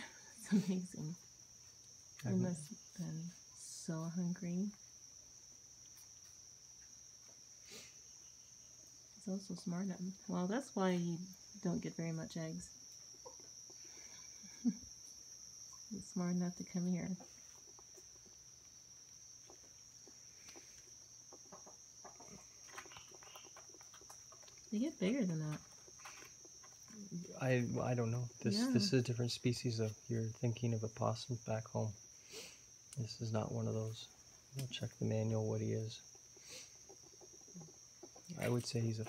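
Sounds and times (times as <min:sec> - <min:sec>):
high insect trill: 0:00.0 - 0:39.0
chickens clucking softly: 0:20.5 - 0:24.5, 0:36.0 - 0:38.6.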